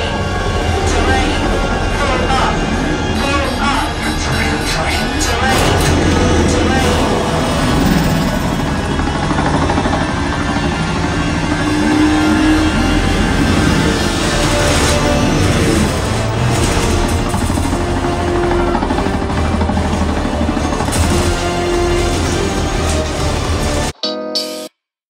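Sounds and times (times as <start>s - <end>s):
engine-like pitch sweeps: 0.0s - 20.8s
action film music: 0.0s - 24.0s
vehicle engine noise: 5.0s - 23.9s.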